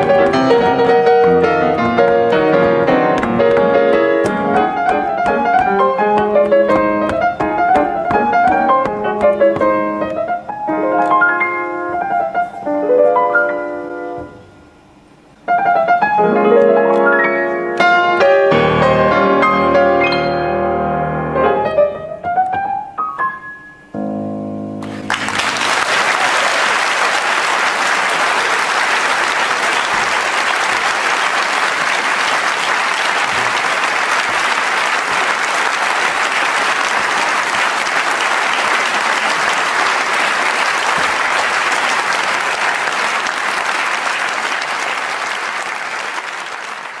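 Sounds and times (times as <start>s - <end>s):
piano chord: 0.0s - 14.8s, 15.5s - 25.7s
audience applauding: 24.8s - 47.0s.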